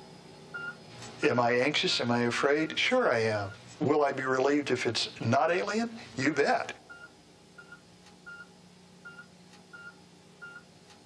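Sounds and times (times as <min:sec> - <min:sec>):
low steady hum: 0:00.0 - 0:11.0
patient monitor beeping: 0:00.5 - 0:00.9, 0:06.8 - 0:10.7.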